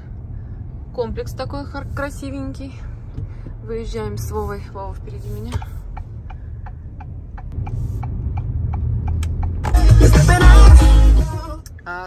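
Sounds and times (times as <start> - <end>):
engine and road rumble: 0.0 - 12.0
turn signal ticking: 0.1 - 12.0
loud music with heavy bass: 9.6 - 11.6.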